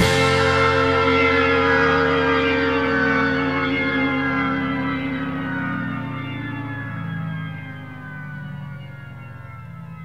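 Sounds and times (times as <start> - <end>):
rock band held chord: 0.0 - 7.0.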